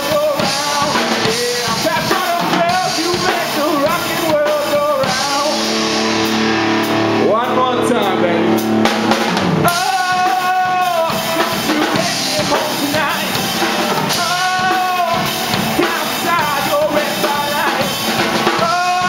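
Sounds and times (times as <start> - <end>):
man singing: 0.0 - 6.0, 7.2 - 8.8, 9.6 - 19.0
bass guitar: 0.0 - 19.0
drum kit: 0.0 - 19.0
electric guitar: 0.0 - 19.0.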